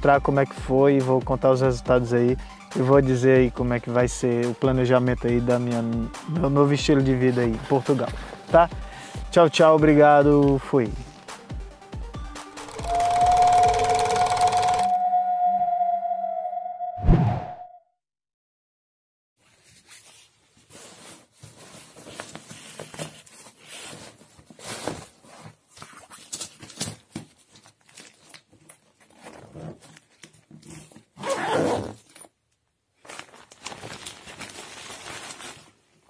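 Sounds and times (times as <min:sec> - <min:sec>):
steady high tone: 0:12.6 - 0:17.8
zipper rasping: 0:29.0 - 0:32.2.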